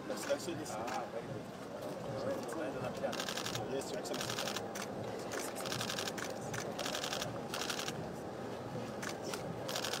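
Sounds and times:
camera shutters clicking: 0:03.1 - 0:08.0, 0:09.0 - 0:10.0.

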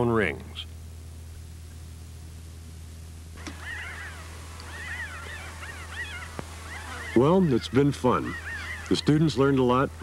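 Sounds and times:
steady low hum: 0:00.0 - 0:10.0
birds chirping: 0:03.4 - 0:10.0.

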